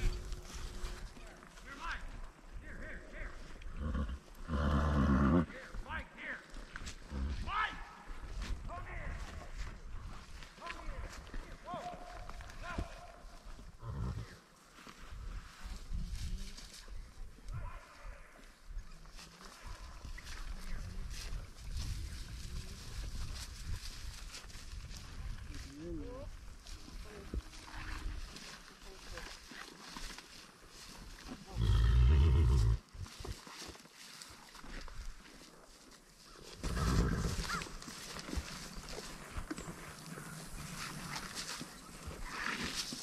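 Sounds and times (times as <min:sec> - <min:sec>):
rumble of movement and wind: 0:00.0 - 0:05.0, 0:20.0 - 0:28.3.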